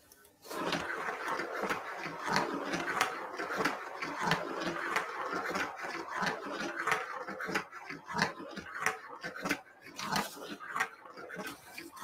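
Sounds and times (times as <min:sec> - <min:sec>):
steel marbles rattling on plastic track: 0:00.5 - 0:12.0.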